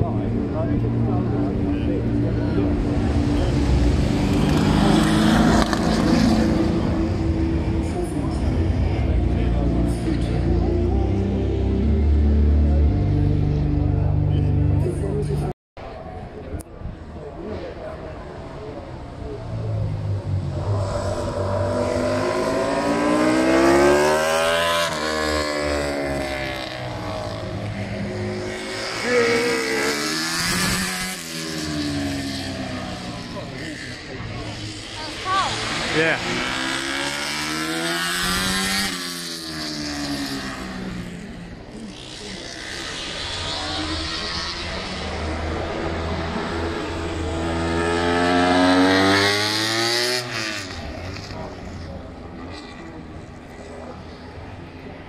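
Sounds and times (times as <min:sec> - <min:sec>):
racing motorcycles passing by: 0:00.0 - 0:15.2, 0:17.4 - 0:55.0.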